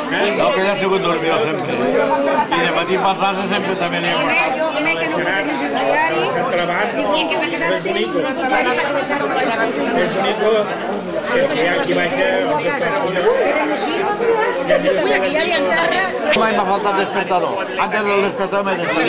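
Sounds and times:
hubbub of overlapping conversation: 0.0s - 19.0s.

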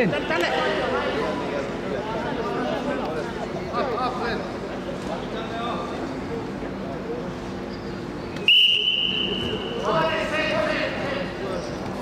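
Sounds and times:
referee's whistle blast: 8.4s - 9.8s.

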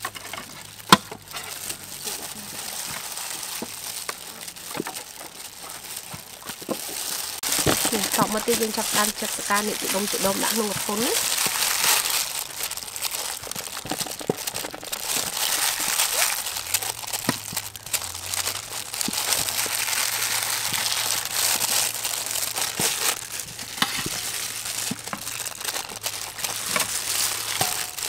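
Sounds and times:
plastic glove crinkling: 0.0s - 28.0s
pieces dropping into steel bowl: 26.6s - 28.0s.

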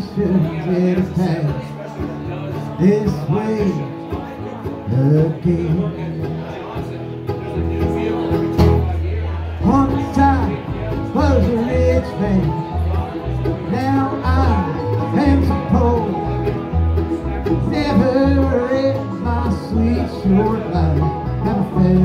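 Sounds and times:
bluegrass band playing: 0.0s - 22.0s
mandolin: 0.0s - 22.0s
picked banjo: 0.0s - 22.0s
strummed acoustic guitar: 0.0s - 22.0s.

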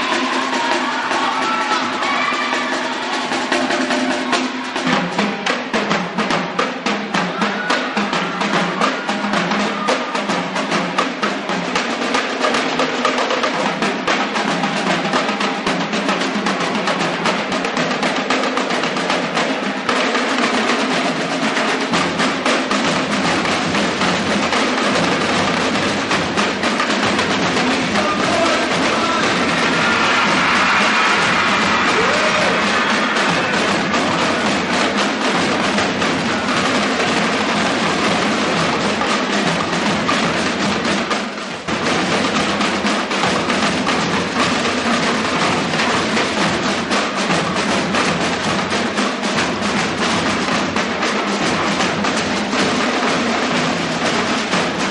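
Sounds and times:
drumline playing fast cadence: 0.0s - 54.9s.

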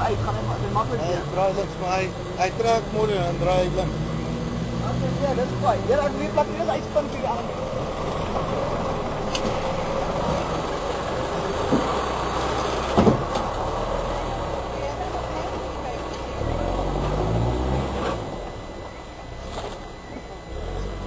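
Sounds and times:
truck engine under load: 0.0s - 21.0s.

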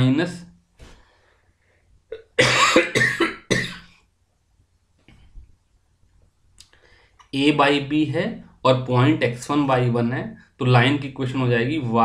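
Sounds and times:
man coughing: 2.1s - 3.9s.

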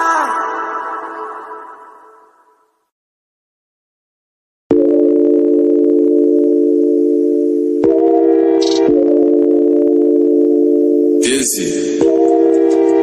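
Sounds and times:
electronic chord of held tones: 4.7s - 13.0s.

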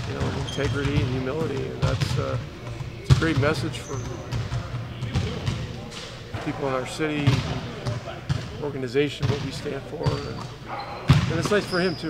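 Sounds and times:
basketballs bouncing on hardwood: 0.0s - 5.6s, 7.2s - 8.5s, 9.2s - 10.5s, 11.1s - 11.6s.

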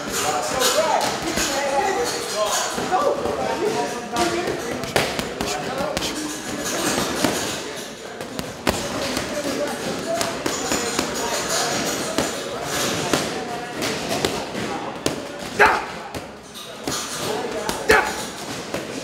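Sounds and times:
background chatter of voices: 0.0s - 19.0s.

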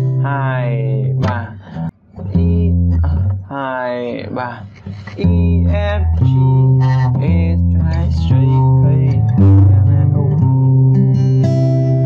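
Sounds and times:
acoustic guitar bass notes: 0.0s - 12.0s.

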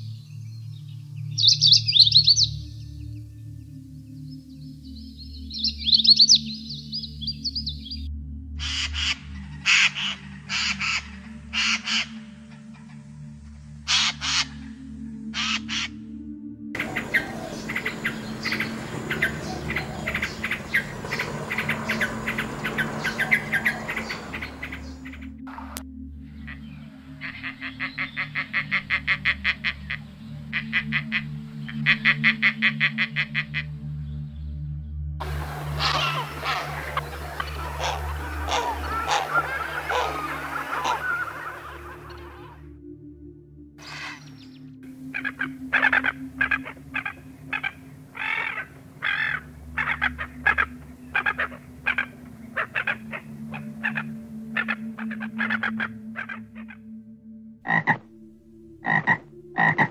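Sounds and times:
birds calling and trilling: 0.0s - 13.2s, 13.8s - 16.0s, 16.8s - 34.6s, 35.2s - 42.6s, 43.8s - 57.0s
soft background music: 0.0s - 59.9s
steady low drone: 14.5s - 32.7s, 33.5s - 59.9s.

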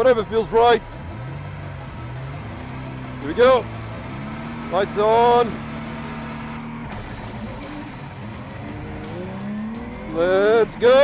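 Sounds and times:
race car engine revving: 0.0s - 11.0s.

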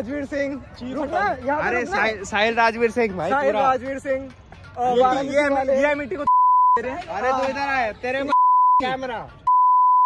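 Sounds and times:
men talking: 0.0s - 9.5s
censor bleep: 6.3s - 6.8s, 8.3s - 8.8s, 9.5s - 10.0s.

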